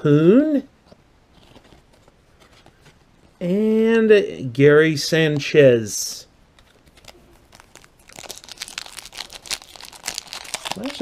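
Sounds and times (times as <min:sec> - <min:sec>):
cards rustling and ticking: 0:01.3 - 0:03.4, 0:06.5 - 0:11.0.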